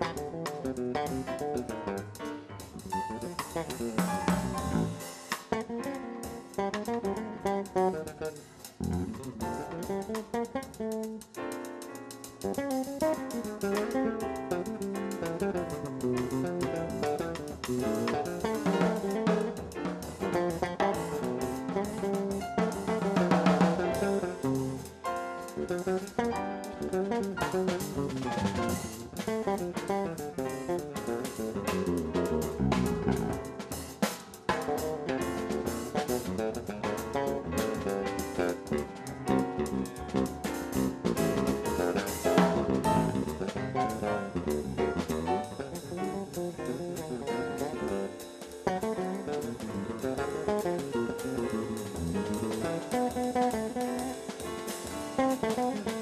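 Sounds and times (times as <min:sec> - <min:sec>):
drum kit with cymbals and snare: 0:00.0 - 0:56.0
jazz guitar lines: 0:00.0 - 0:56.0.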